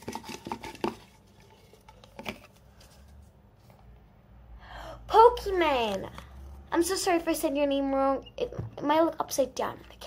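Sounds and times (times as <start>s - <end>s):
person breathing in: 4.6s - 5.1s.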